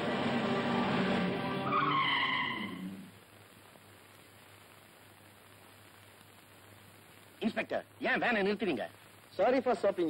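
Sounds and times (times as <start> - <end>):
background film music: 0.0 - 3.0
car tyres screeching: 0.2 - 3.1.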